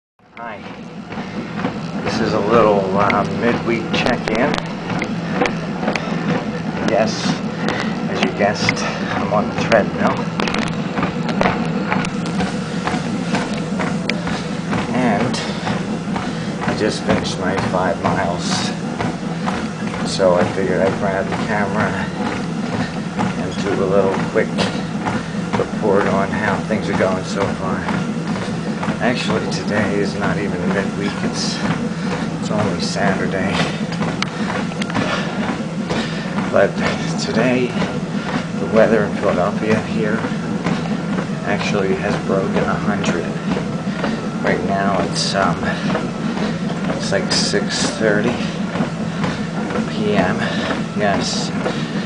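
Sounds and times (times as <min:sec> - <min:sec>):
treadmill motor and belt hum: 0:00.2 - 0:52.0
footfalls on treadmill belt: 0:00.4 - 0:52.0.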